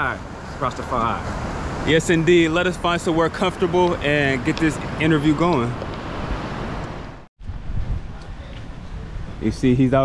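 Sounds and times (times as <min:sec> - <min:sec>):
wind rumbling on microphone: 0:00.3 - 0:10.0.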